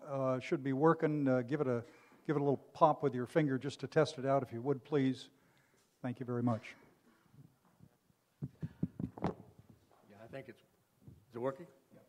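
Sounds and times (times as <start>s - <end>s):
finger tapping a microphone: 8.4s - 9.5s.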